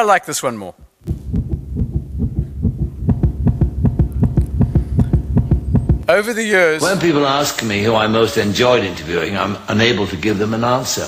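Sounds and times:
fast low thumping over speakers: 0.8 - 6.1.

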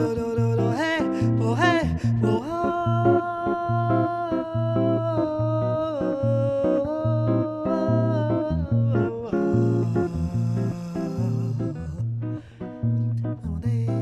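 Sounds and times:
jazz guitar bossa nova: 0.0 - 14.0.

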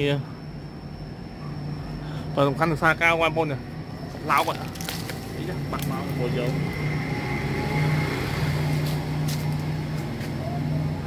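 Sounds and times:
low engine hum: 0.6 - 11.0.

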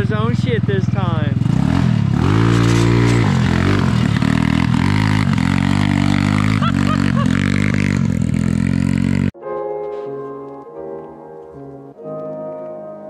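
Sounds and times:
go-kart engine revving: 0.0 - 9.3.

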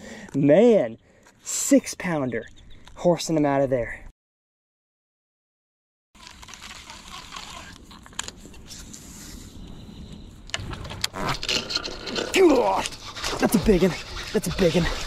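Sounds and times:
outdoor noise on water: 6.2 - 12.2.

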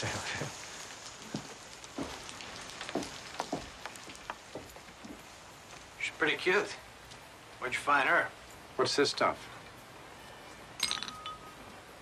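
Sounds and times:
sharp water drips: 0.0 - 7.6
steady rain falling: 0.0 - 12.0.

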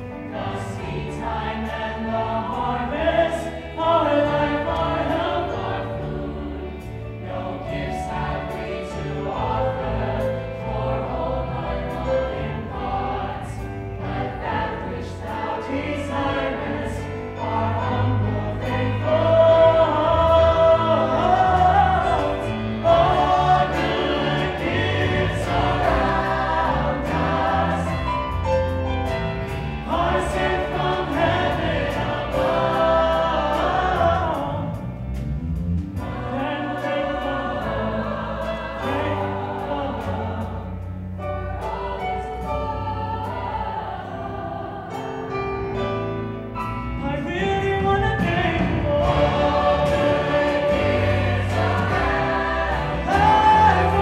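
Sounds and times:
chorus singing: 0.0 - 54.0
live band playing: 17.0 - 36.9, 44.4 - 54.0
man singing: 47.0 - 49.4.

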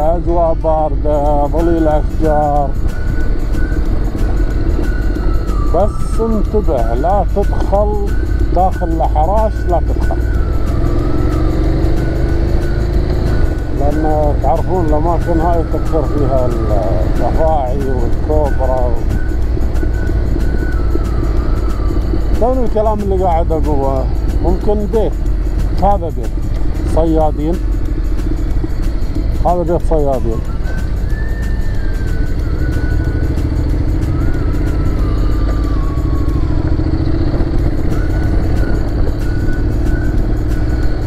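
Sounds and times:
faint background music: 0.0 - 41.0
motorcycle engine rumble: 0.0 - 41.0
wind on microphone: 30.4 - 41.0.

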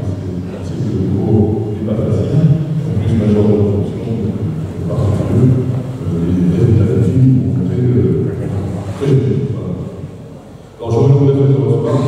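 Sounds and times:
man speaking over public address: 0.0 - 12.0.

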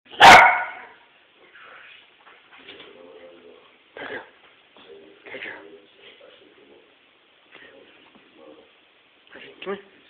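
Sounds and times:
dog barking: 0.1 - 1.0.

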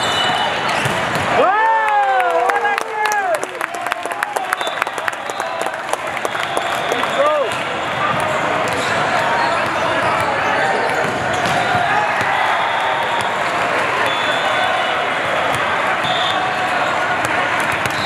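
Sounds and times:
claps: 1.8 - 7.7
many overlapping voices: 5.1 - 18.0
ball bounces: 7.5 - 12.4, 17.2 - 18.0.

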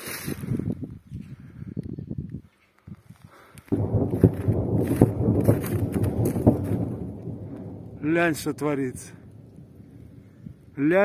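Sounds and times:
footsteps: 3.7 - 6.8.

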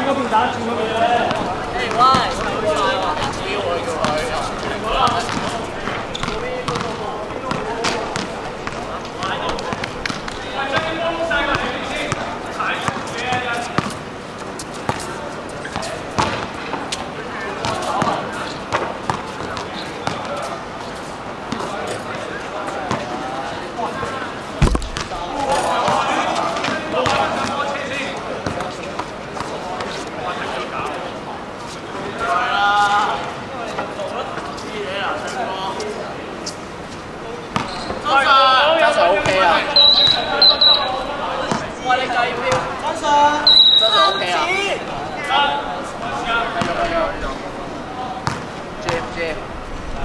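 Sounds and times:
players chattering and calling out: 0.0 - 50.0
basketballs bouncing on hard court: 1.3 - 14.0, 15.7 - 16.5, 17.6 - 20.4, 24.6 - 26.0, 26.6 - 27.6, 37.5 - 38.0, 42.5 - 42.8, 48.2 - 49.1
heavy thump: 24.6 - 25.2.

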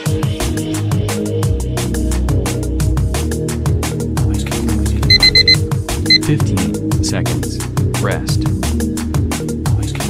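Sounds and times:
short electronic timer beeps: 5.1 - 5.6.

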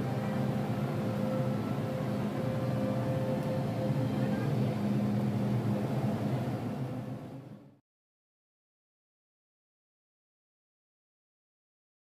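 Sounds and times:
murmur of crowd voices: 0.0 - 7.4
low hum: 0.0 - 7.8.

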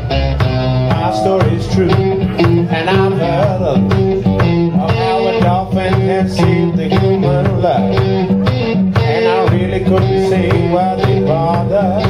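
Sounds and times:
electric blues guitar: 0.0 - 12.0
kick drum beat: 0.4 - 12.0
person singing wordlessly: 0.9 - 12.0.

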